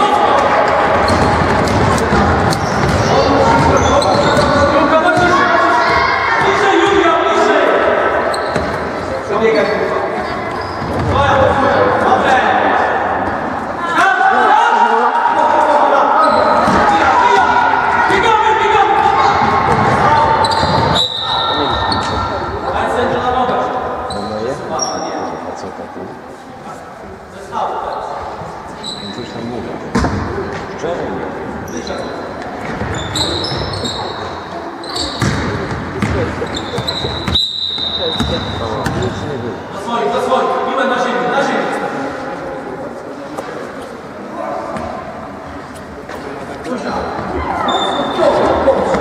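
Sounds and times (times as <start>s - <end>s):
basketball bouncing: 0.7s - 5.4s, 35.2s - 37.4s, 38.2s - 39.1s
shoe squeaks: 2.5s - 4.8s, 8.2s - 8.8s, 9.5s - 11.1s, 16.2s - 16.8s, 20.1s - 22.7s, 24.0s - 25.4s, 28.8s - 29.5s, 31.6s - 35.4s, 36.4s - 39.2s, 46.8s - 48.6s.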